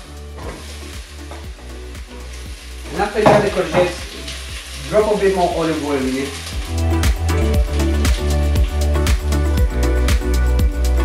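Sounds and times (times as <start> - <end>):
onion sizzling in oil: 0.0 - 11.0
soft background music: 0.0 - 11.0.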